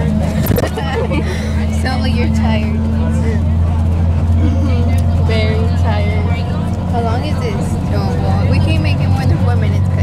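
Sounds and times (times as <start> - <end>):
bus engine and road noise: 0.0 - 10.0
voices: 0.0 - 10.0.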